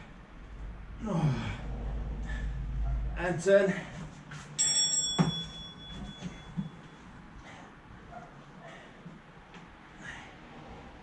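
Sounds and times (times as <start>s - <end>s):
bright bell-like chime: 4.6s - 6.9s.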